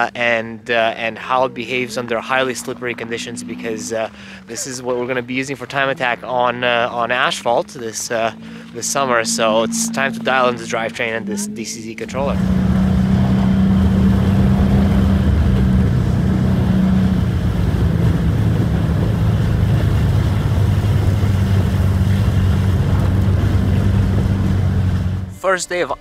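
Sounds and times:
tyre and road noise: 0:00.0 - 0:25.4
car engine from inside cabin: 0:00.2 - 0:25.4.

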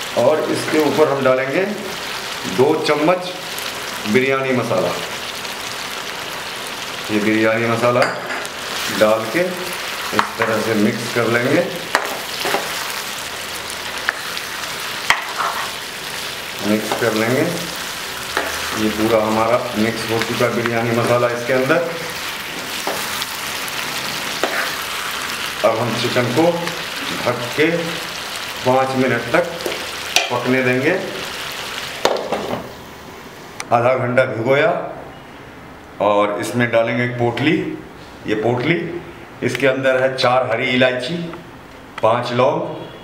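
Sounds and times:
chicken sizzling in a pan: 0:00.0 - 0:32.5.

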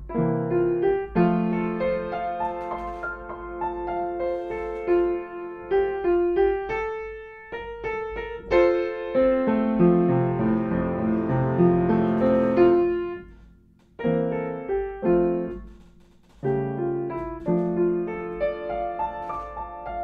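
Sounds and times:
upright piano playing: 0:00.0 - 0:15.8, 0:16.4 - 0:20.0.

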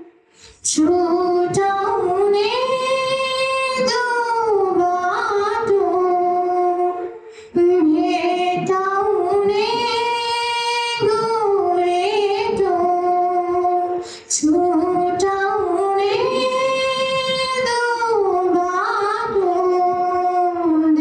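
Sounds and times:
woman singing: 0:00.0 - 0:21.0
singer breathing: 0:00.1 - 0:00.7, 0:07.1 - 0:07.6, 0:14.0 - 0:14.3.

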